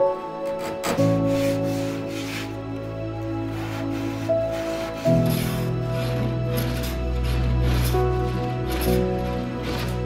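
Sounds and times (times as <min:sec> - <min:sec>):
background music with chords: 0:00.0 - 0:10.0
sandpaper rasping on wood: 0:00.6 - 0:02.6, 0:03.4 - 0:10.0.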